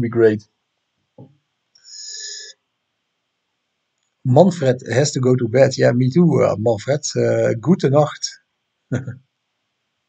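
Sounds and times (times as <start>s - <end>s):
faint low sound: 0.0s - 0.4s, 4.3s - 9.2s.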